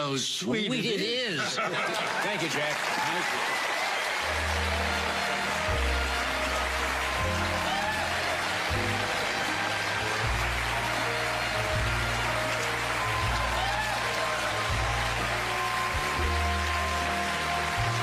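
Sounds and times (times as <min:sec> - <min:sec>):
studio band playing upbeat music: 0:01.0 - 0:18.0
audience applause: 0:01.6 - 0:18.0.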